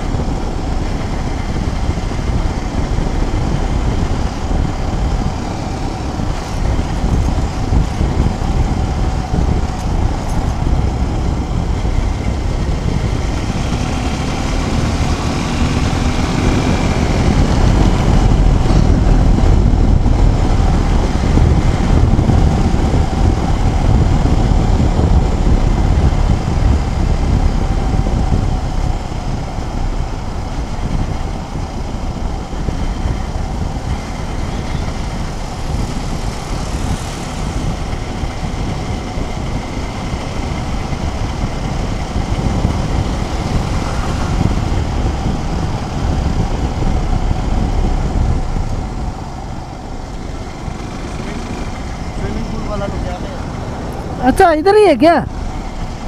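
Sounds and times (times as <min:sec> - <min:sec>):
motorcycle engine running: 0:00.0 - 0:56.0
wind rushing over microphone: 0:00.0 - 0:56.0.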